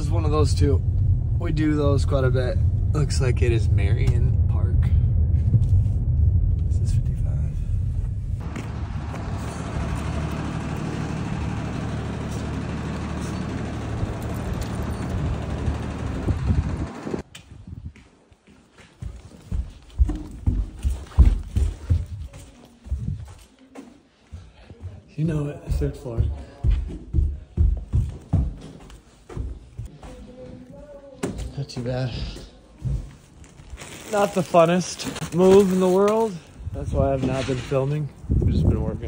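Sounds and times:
low rumble with rushing: 0:00.0 - 0:17.9, 0:36.4 - 0:39.0
footsteps on carpeted stairs: 0:17.3 - 0:33.4.

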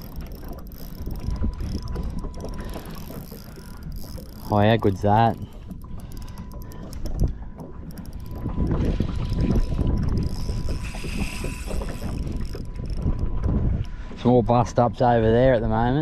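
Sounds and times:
water slapping around a boat: 0:00.0 - 0:16.0
wind rumbling on microphone: 0:00.0 - 0:16.0.

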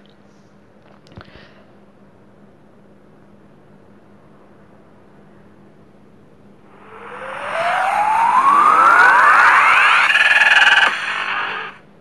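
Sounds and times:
noisy whoosh: 0:06.7 - 0:11.8
pulsing synth chord: 0:06.7 - 0:11.8
rising synth sweep: 0:06.7 - 0:11.8.

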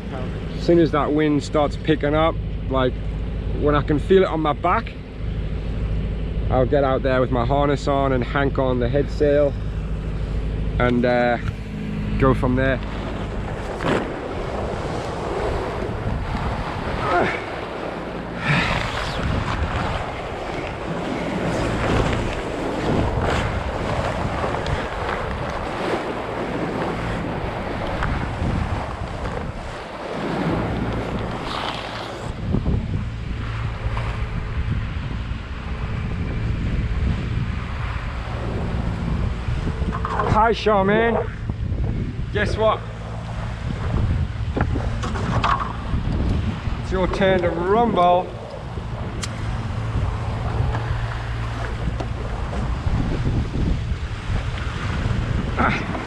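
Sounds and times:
steady low hum: 0:00.0 - 0:56.0
water splashing along hull: 0:00.0 - 0:56.0
wind buffeting microphone: 0:00.0 - 0:56.0.

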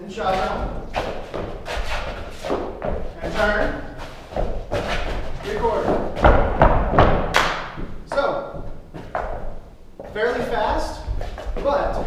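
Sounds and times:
dancers stomping on floor: 0:04.4 - 0:08.0.

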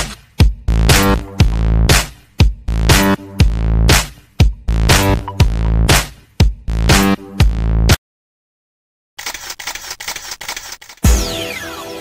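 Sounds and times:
camera shutter clicks: 0:09.2 - 0:11.0.

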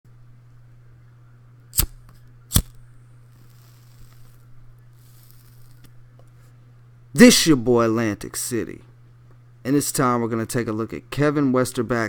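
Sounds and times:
low electrical hum: 0:00.1 - 0:12.0
faint hiss: 0:03.2 - 0:05.8.

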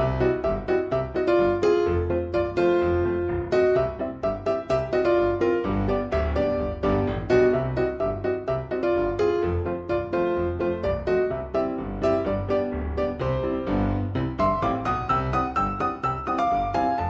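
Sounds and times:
keyboard instrumental music: 0:00.0 - 0:17.0.

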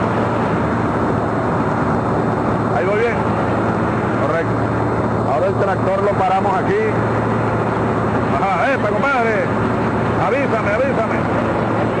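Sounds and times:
constant low hum: 0:00.0 - 0:12.0
tractor diesel engine running: 0:00.0 - 0:12.0.

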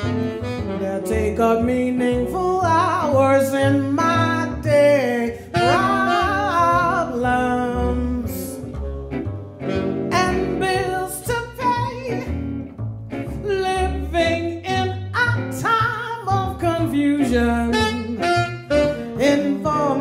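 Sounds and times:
woman singing jazz: 0:00.0 - 0:12.4, 0:13.3 - 0:20.0
electric guitar: 0:00.0 - 0:20.0
upright double bass: 0:00.0 - 0:20.0.

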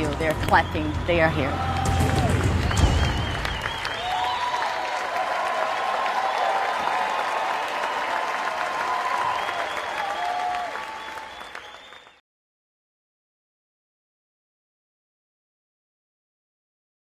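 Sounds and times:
audience cheering: 0:00.0 - 0:12.2
audience clapping: 0:00.0 - 0:12.2.

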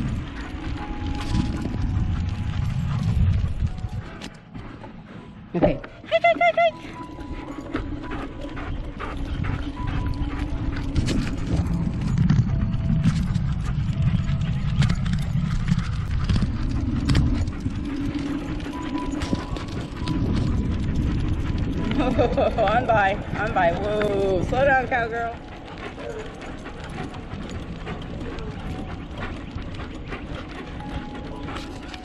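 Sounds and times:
dog claws clicking on asphalt: 0:00.0 - 0:04.6, 0:06.9 - 0:32.0
wind and tyre noise: 0:00.0 - 0:32.0.

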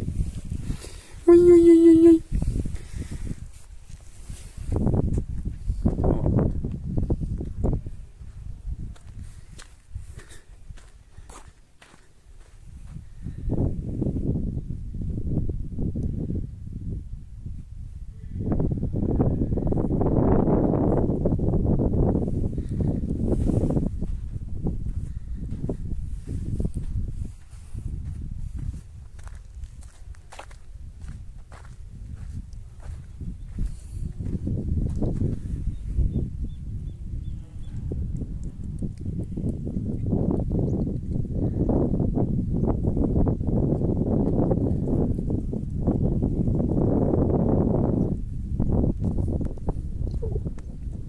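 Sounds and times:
footsteps crunching on dirt: 0:02.3 - 0:13.1, 0:22.8 - 0:35.7.

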